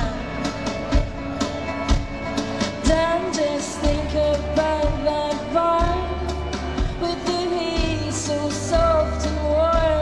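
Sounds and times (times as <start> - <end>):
woman singing: 0.0 - 0.8, 2.6 - 10.0
live country band: 0.0 - 10.0.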